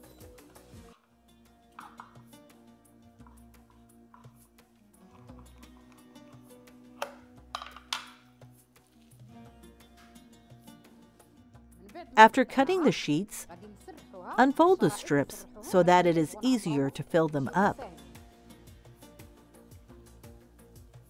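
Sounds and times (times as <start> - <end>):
quiet background music: 0.0 - 21.0.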